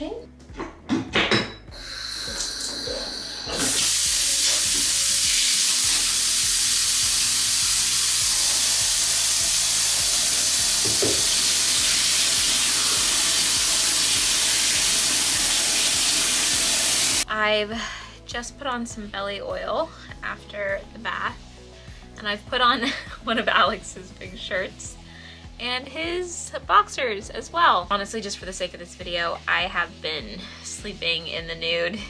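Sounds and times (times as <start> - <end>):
tap running into bathtub: 2.3 - 17.2.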